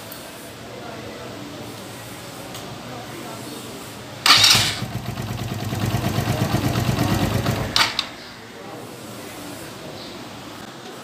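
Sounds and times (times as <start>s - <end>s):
motorcycle engine idling: 4.2s - 8.6s
motorcycle engine starting: 4.2s - 8.6s.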